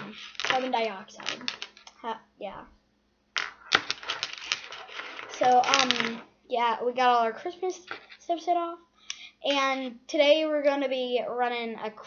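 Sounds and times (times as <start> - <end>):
plastic pieces clicking and clattering: 0.0 - 1.9, 3.4 - 6.2.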